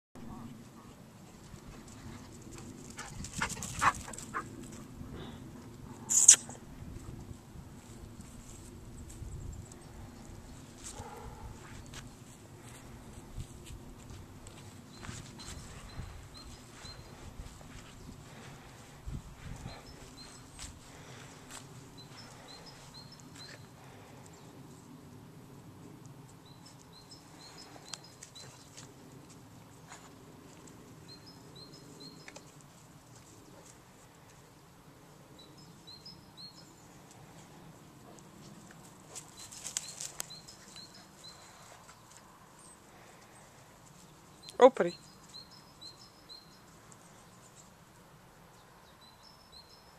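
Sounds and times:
bird chirping: 44.0 - 47.6, 48.5 - 49.9.

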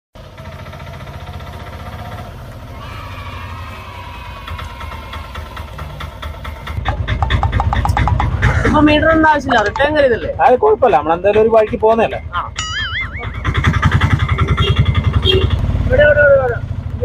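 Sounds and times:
auto rickshaw engine running: 0.1 - 17.0.

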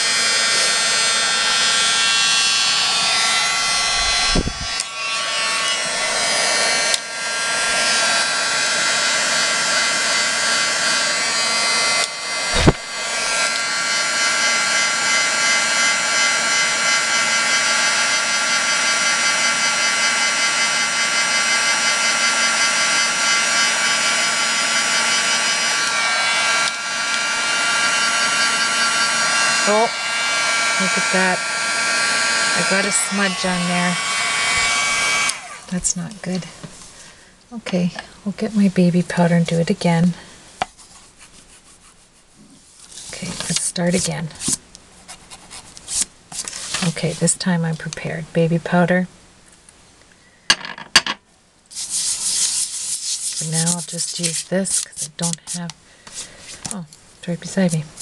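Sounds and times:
heat tool fan whirring: 0.0 - 40.4.

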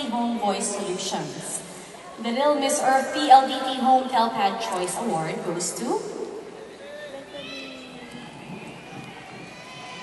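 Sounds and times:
murmur of audience: 0.0 - 10.0.

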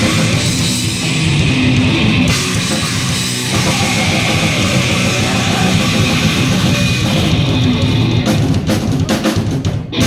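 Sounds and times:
distorted electric guitars: 0.0 - 10.0
drums: 0.0 - 10.0
heavy metal band playing live: 0.0 - 10.0.

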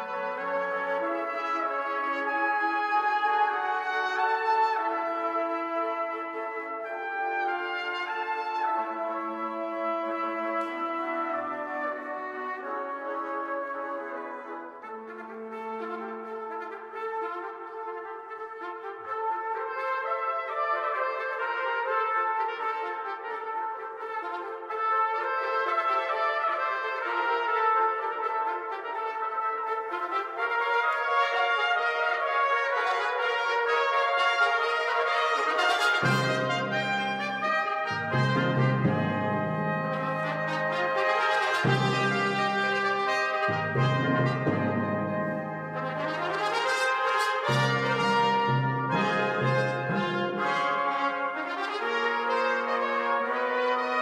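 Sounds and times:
trumpet fanfare: 0.0 - 54.0
low percussion: 36.0 - 46.4, 47.5 - 51.0.

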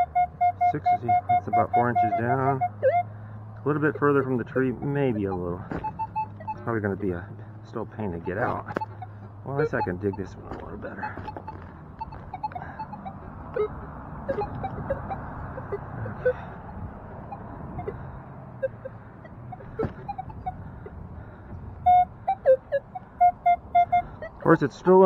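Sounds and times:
metal detector beeps: 0.0 - 3.0, 3.7 - 18.0, 18.6 - 20.6
digging noises: 3.6 - 16.5.

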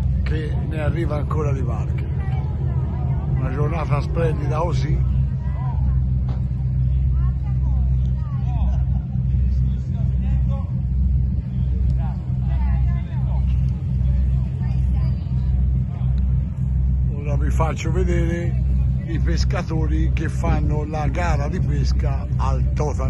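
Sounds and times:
boat diesel engines droning: 0.0 - 23.0.

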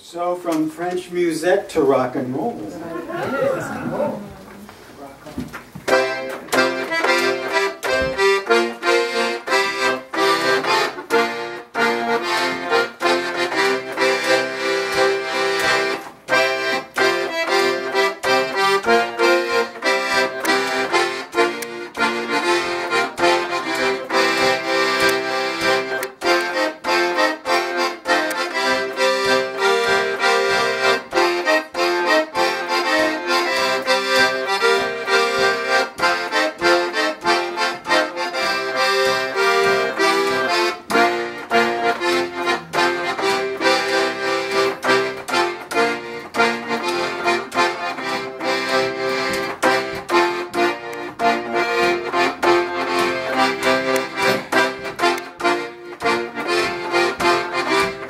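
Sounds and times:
accordion playing: 5.7 - 58.0.

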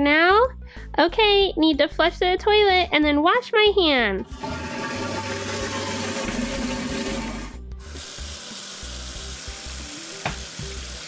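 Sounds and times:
tap running: 4.2 - 8.1, 10.2 - 10.9
toilet flushing: 4.2 - 11.0.

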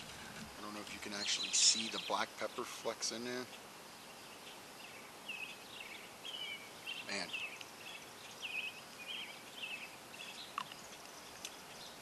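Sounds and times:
small birds chirping: 0.0 - 12.0
steady outdoor noise: 0.0 - 12.0.

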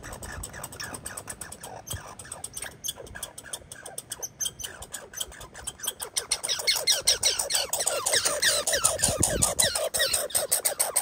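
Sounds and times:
squirrel chattering: 0.0 - 11.0.

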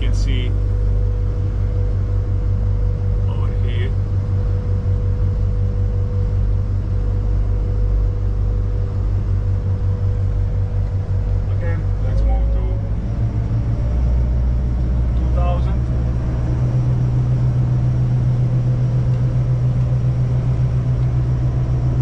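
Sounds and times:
diesel boat engines droning: 0.0 - 22.0
engine whine: 0.0 - 22.0.

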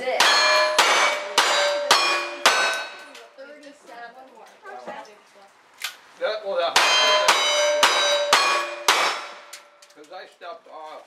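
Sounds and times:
steel plate target ringing clang: 0.0 - 3.2, 6.8 - 9.8.

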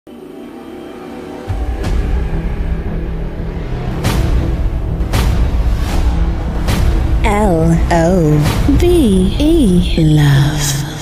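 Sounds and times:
background music with held tones: 0.1 - 11.0.

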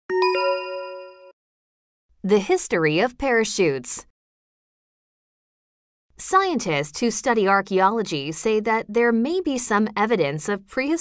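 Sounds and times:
two-note bell chime: 0.1 - 1.4.

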